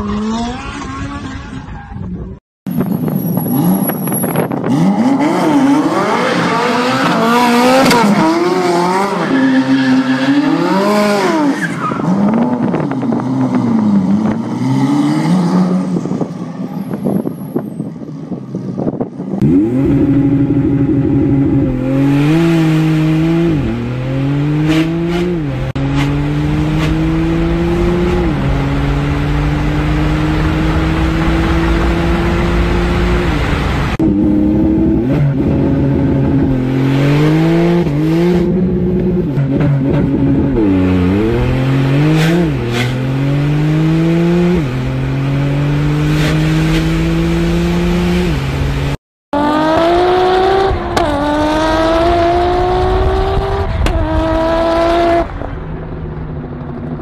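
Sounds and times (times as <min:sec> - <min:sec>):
car accelerating through gearshifts: 0:19.4 - 0:48.3, 0:49.4 - 0:55.3
car engine revving: 0:19.4 - 0:57.0.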